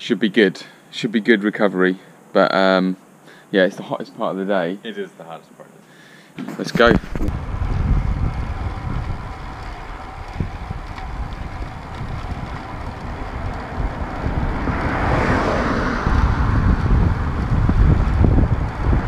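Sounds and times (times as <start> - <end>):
bike tyre and road noise: 6.6 - 19.0
wind buffeting microphone: 6.7 - 19.0
car passing: 7.1 - 19.0.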